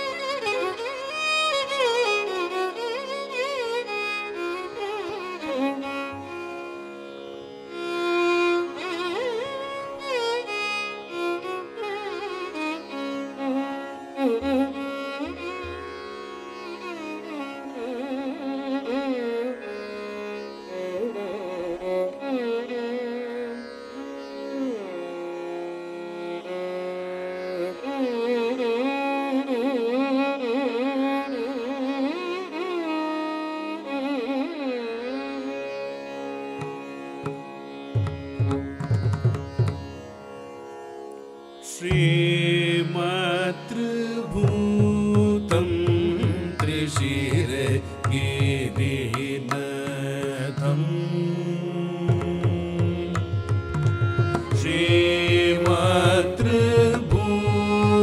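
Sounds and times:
violin playing ornamented notes: 0:00.0 - 0:58.0.

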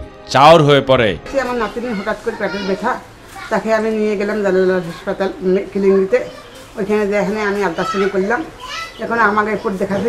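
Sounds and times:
elderly woman talking: 0:01.3 - 0:10.0.

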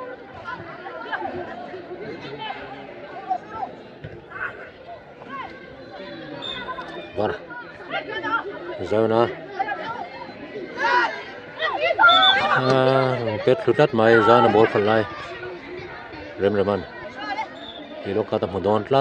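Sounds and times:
voices talking and calling out: 0:00.0 - 0:19.0.

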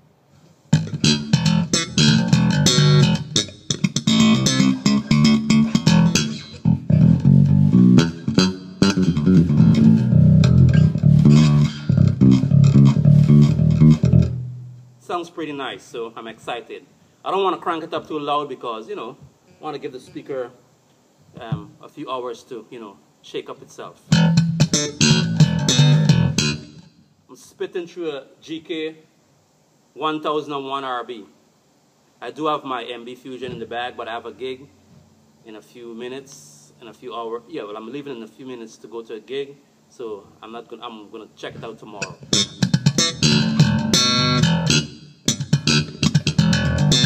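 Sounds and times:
electric bass guitar plucked notes: 0:00.7 - 0:14.8, 0:24.1 - 0:26.9, 0:42.0 - 0:47.0.

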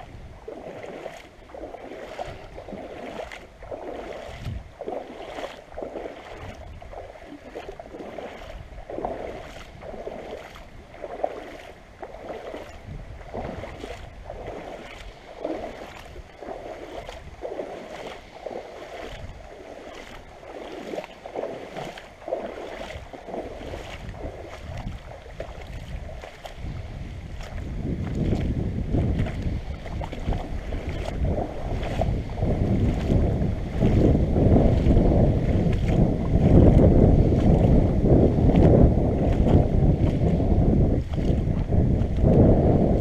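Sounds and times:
muffled water sloshing and splashing: 0:00.0 - 0:43.0.

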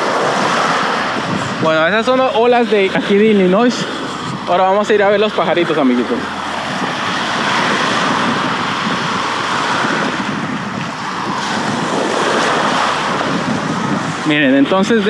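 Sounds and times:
lake waves breaking on sand: 0:00.0 - 0:15.0
wind on microphone: 0:00.0 - 0:15.0.

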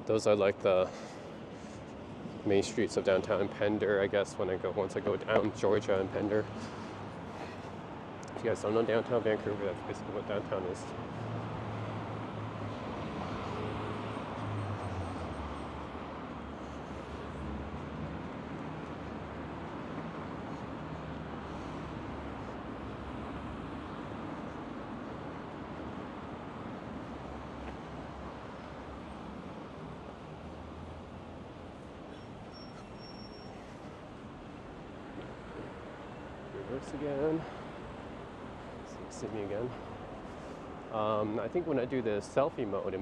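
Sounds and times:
city street traffic: 0:00.0 - 0:43.0.

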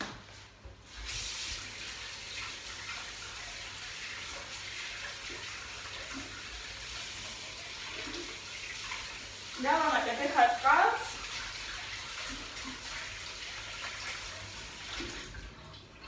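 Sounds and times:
woman speaking: 0:09.6 - 0:11.2.

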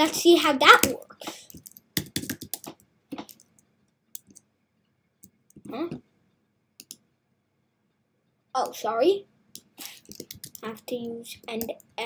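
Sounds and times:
computer keyboard typing: 0:01.5 - 0:03.5, 0:09.6 - 0:10.8.

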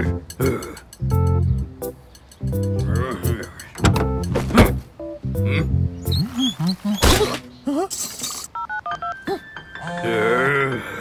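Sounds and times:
playful background music: 0:00.0 - 0:11.0
short knocks: 0:03.8 - 0:04.8.

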